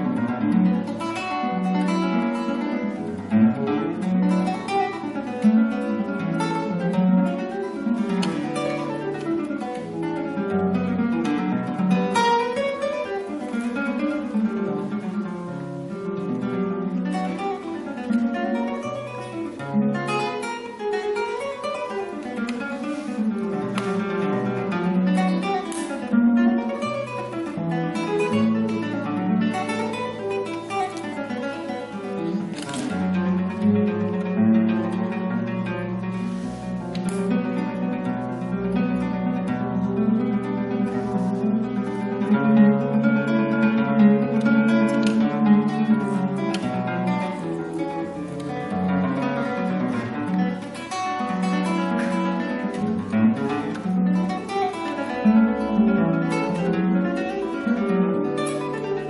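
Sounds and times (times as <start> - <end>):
fingerpicked classical guitar: 0.0 - 59.0.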